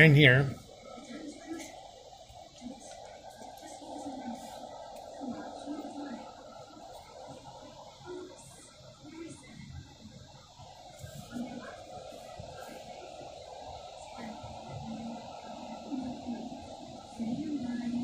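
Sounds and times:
faint indistinct murmur: 0.0 - 18.0
rain hissing: 0.0 - 18.0.

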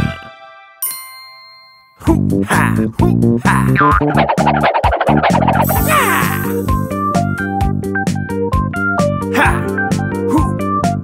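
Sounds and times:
bright cartoon chime: 0.8 - 2.1, 5.6 - 6.9
music phrase: 5.6 - 7.2.

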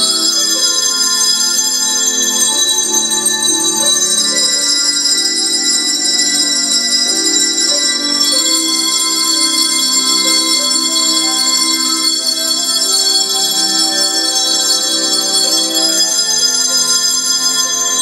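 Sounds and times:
handbells ringing a tune: 0.0 - 18.0.

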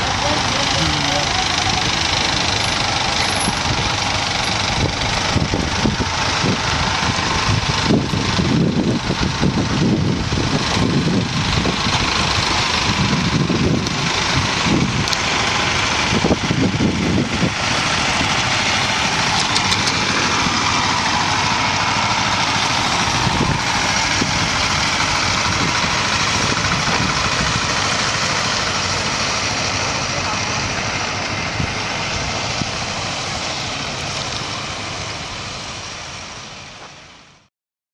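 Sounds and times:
engines running: 0.0 - 37.4.

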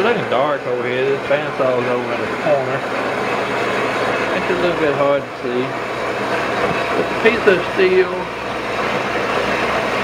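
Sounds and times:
metal-cutting bandsaw running: 0.0 - 10.0.

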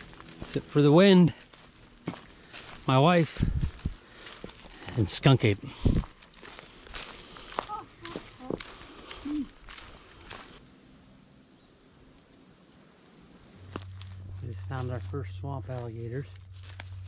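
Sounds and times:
footsteps crunching dry leaves: 0.0 - 10.7, 13.0 - 17.0
low steady hum: 0.0 - 17.0
person speaking: 14.4 - 16.4.

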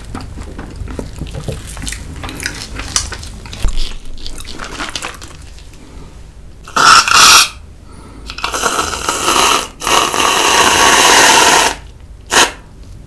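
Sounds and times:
whipped cream can hissing: 8.3 - 12.6.

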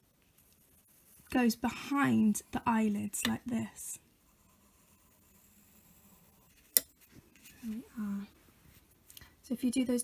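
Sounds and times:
pencil drawing on paper: 0.0 - 7.9.

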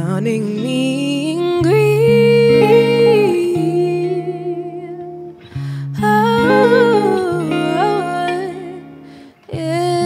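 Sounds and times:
woman singing wordless vocal run: 0.0 - 10.0
sustained electric guitar chords: 0.4 - 10.0.

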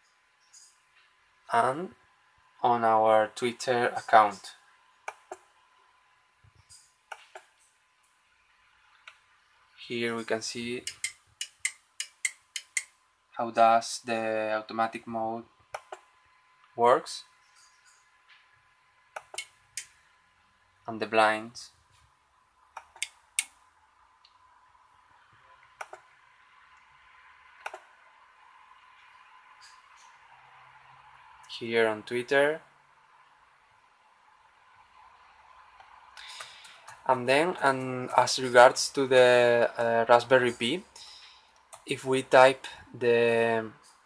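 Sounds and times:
faint hum with high tone: 0.0 - 44.0.

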